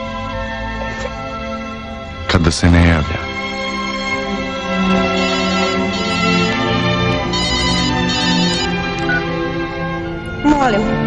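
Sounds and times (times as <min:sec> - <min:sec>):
orchestral background music: 0:00.0 - 0:11.0
mobile phone ringtone: 0:03.8 - 0:09.4.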